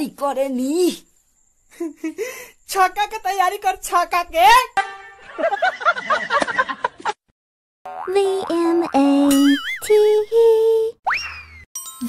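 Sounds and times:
boing sound effect: 0:07.9 - 0:09.8
high cartoon voice singing: 0:08.0 - 0:11.0.

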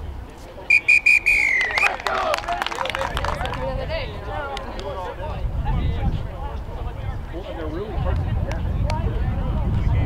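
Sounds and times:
referee's whistle: 0:00.7 - 0:02.0.

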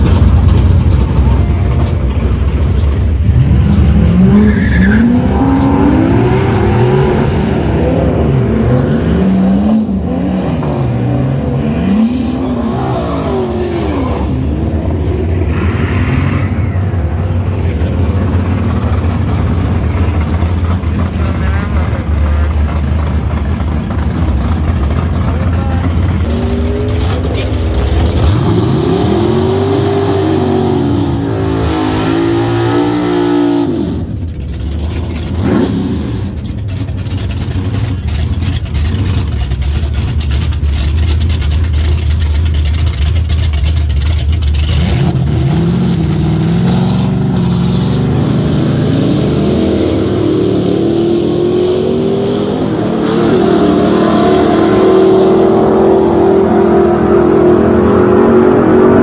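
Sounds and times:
engines idling: 0:00.0 - 0:50.8
drag race engine revving: 0:00.0 - 0:59.0.

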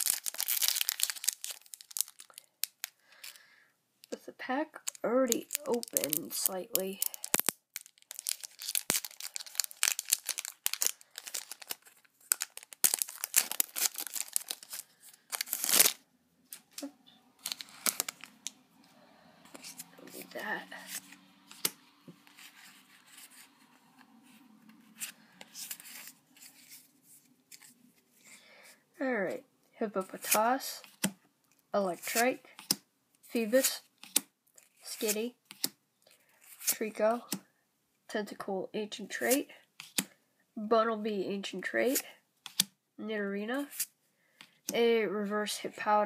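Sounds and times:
foil wrapper tearing and crinkling: 0:00.0 - 0:03.3, 0:04.8 - 0:16.0, 0:16.6 - 0:18.6
cards rustling and clicking: 0:00.0 - 0:03.4, 0:04.8 - 0:18.6, 0:19.5 - 0:28.4, 0:32.0 - 0:35.8, 0:39.2 - 0:40.1, 0:41.8 - 0:42.7.

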